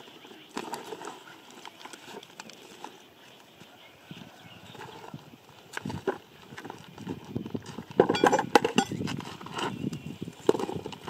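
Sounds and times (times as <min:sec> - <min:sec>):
footsteps on loose rock: 0:04.6 - 0:11.0.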